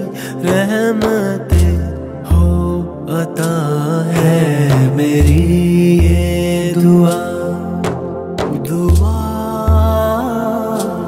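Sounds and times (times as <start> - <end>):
man singing long wavering notes: 0.0 - 7.8
deep bass notes: 1.5 - 3.1, 4.2 - 6.8, 7.8 - 10.4.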